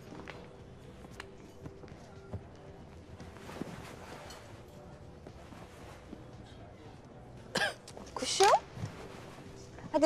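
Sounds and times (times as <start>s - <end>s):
person coughing: 7.5s - 7.8s.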